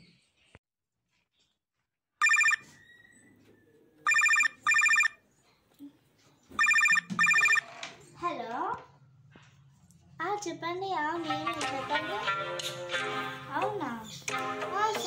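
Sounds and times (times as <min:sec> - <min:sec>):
phone ringing with electronic trill: 0:02.2 - 0:02.7, 0:04.1 - 0:05.2, 0:06.6 - 0:07.6.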